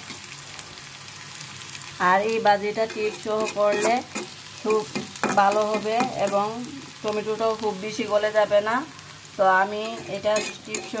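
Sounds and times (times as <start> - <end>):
onions sizzling in oil: 0.0 - 11.0
spatula scraping: 2.8 - 6.4, 9.8 - 11.0.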